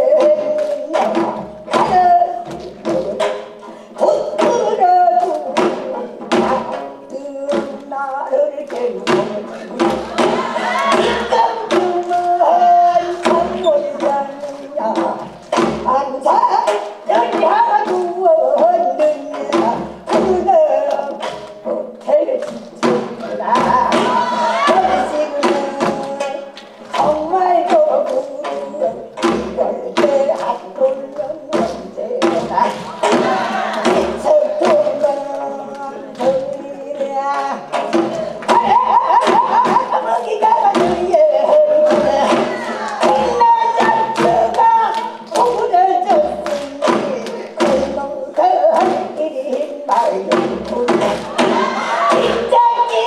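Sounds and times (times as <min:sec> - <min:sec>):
woman singing folk style: 0:00.0 - 0:53.0
deep drum thumps: 0:09.0 - 0:14.2, 0:22.8 - 0:26.3, 0:31.6 - 0:35.3, 0:50.3 - 0:52.9.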